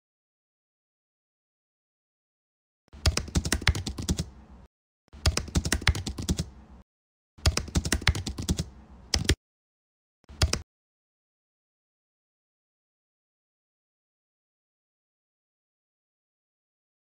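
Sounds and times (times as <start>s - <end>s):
computer keyboard typing: 3.0s - 4.4s, 5.2s - 6.8s, 7.4s - 9.4s, 10.3s - 10.6s.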